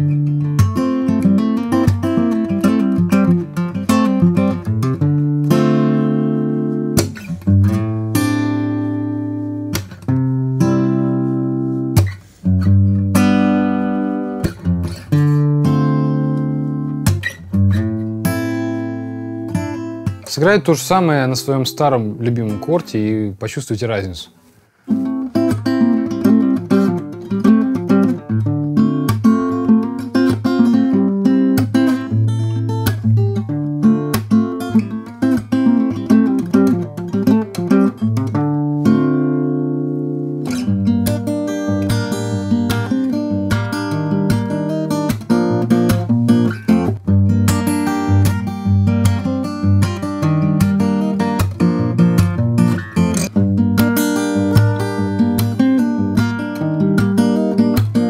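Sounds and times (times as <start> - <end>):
acoustic guitar fingerpicking: 0.0 - 23.4, 24.3 - 58.0.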